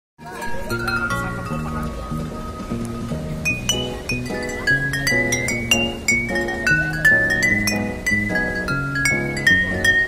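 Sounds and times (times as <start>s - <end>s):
glass bottles struck in melody: 0.2s - 10.0s
low bass line: 0.4s - 10.0s.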